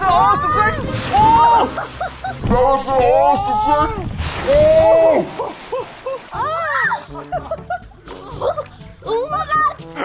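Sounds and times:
splash into swimming pool: 0.6 - 3.3, 4.0 - 7.0.

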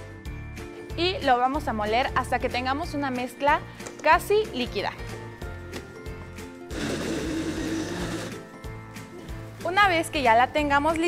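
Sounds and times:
background music with steady beat: 0.0 - 11.0
blender running: 6.7 - 8.4.

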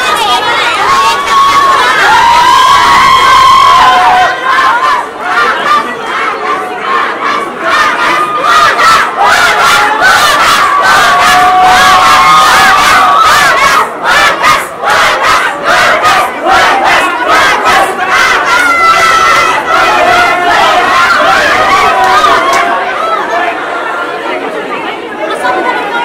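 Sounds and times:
crowd shouting and chanting: 0.0 - 26.0.

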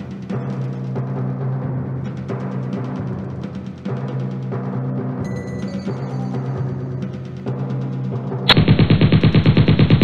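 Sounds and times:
background music: 0.0 - 8.6
machine-gun burst: 8.5 - 10.0.

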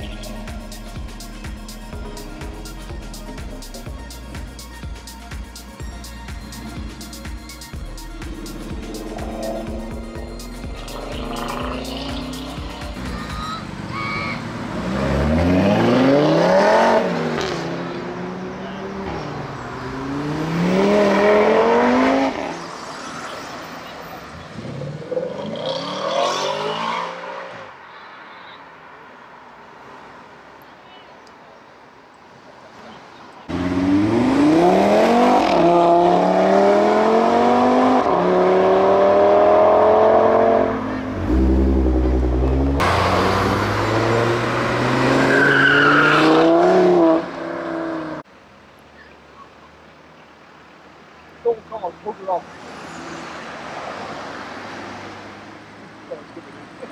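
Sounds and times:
car engine accelerating hard: 8.2 - 22.6, 33.5 - 48.2
other cars accelerating through gears: 8.3 - 23.4, 24.4 - 27.7, 33.5 - 48.3.

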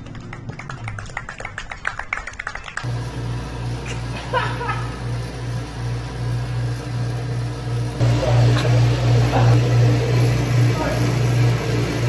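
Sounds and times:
low motor hum: 2.7 - 12.0.

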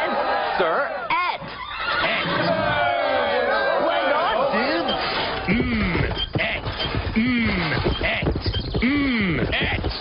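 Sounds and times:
horse whinnying: 1.4 - 2.9.

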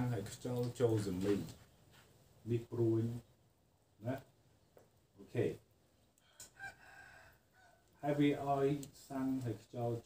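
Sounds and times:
faint rooster crowing: 6.2 - 8.0.

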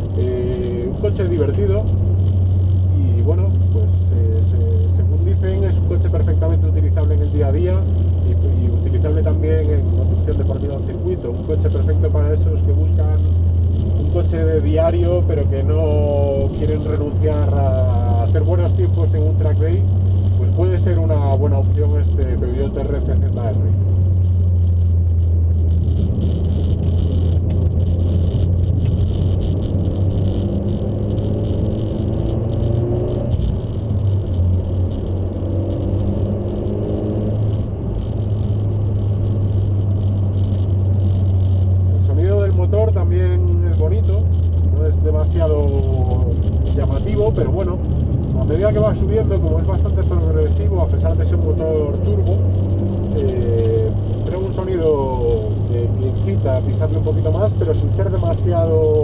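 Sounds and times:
car engine drone in cabin: 0.0 - 59.0
man talking: 0.1 - 1.9, 2.9 - 13.3, 14.0 - 23.8, 42.0 - 52.4, 53.1 - 59.0.

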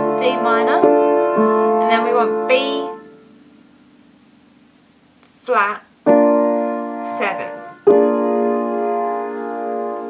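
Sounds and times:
piano chord ringing: 0.0 - 4.2, 6.0 - 10.0.

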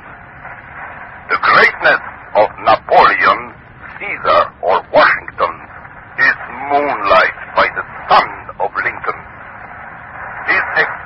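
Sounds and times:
voices on old radio recording: 0.0 - 11.0.

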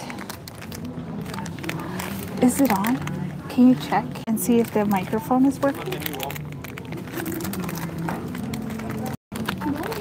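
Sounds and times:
faint music: 0.0 - 10.0
plastic wrapping crinkling: 0.0 - 10.0.

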